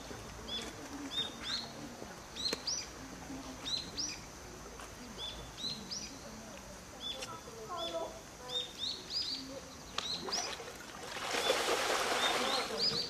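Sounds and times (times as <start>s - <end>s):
small birds chirping: 0.0s - 10.7s, 11.3s - 13.0s.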